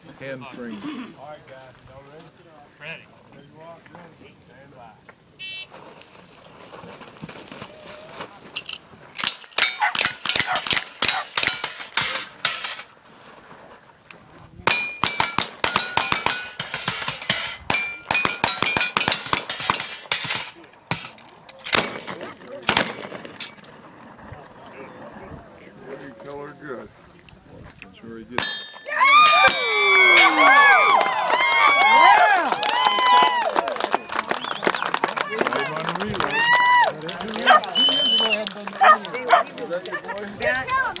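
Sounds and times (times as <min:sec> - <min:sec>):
steel targets clanging: 0:08.6 - 0:13.0, 0:14.7 - 0:23.8, 0:28.4 - 0:30.5.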